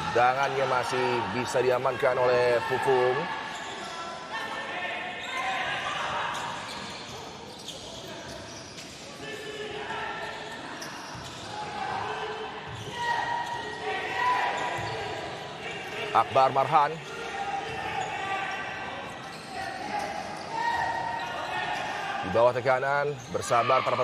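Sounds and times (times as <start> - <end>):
voices echoing in sports hall: 0.0 - 24.0.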